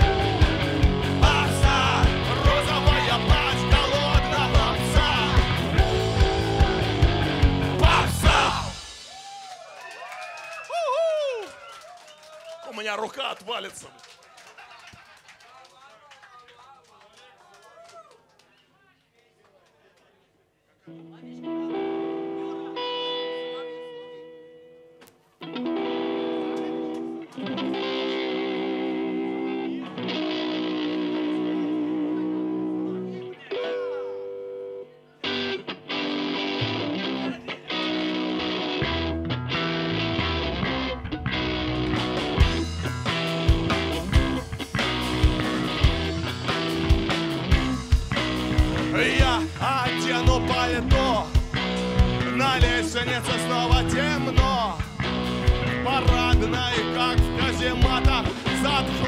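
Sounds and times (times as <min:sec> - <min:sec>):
bass guitar: 0:00.0 - 0:09.0, 0:25.5 - 0:34.0, 0:35.2 - 0:59.0
electric guitar chords: 0:00.0 - 0:09.1, 0:20.9 - 0:59.0
drums: 0:00.0 - 0:09.8, 0:39.9 - 0:59.0.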